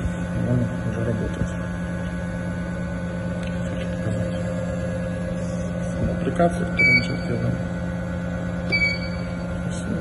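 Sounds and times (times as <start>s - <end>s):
generator motor humming: 0.0s - 10.0s.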